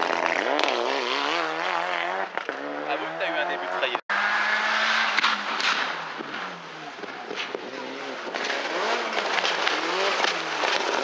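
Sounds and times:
rally car engine revving: 0:00.0 - 0:11.0.

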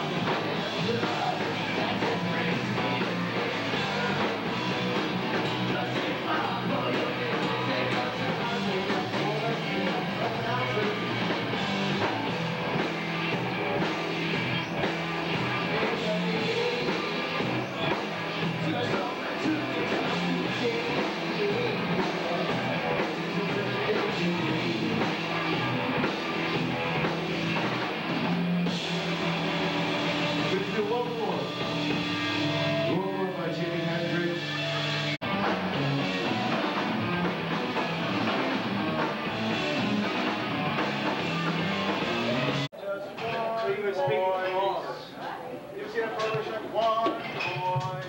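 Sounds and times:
person singing: 0:00.0 - 0:11.4, 0:15.5 - 0:26.1
rock band playing: 0:00.0 - 0:42.7
people's voices: 0:00.0 - 0:48.0.

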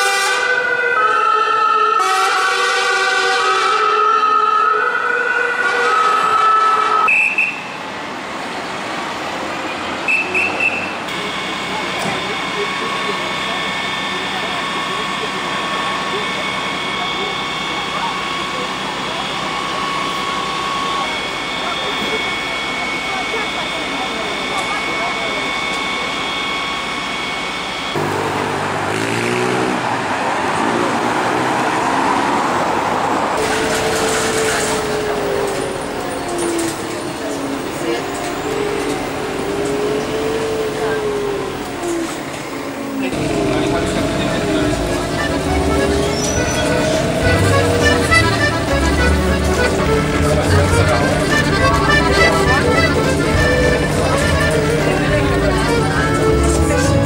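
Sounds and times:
siren tone: 0:00.0 - 0:02.2, 0:10.1 - 0:29.6, 0:33.4 - 0:51.0
voices: 0:00.0 - 0:57.0
bus engine running: 0:07.0 - 0:57.0
engine hum with whining: 0:07.0 - 0:57.0.

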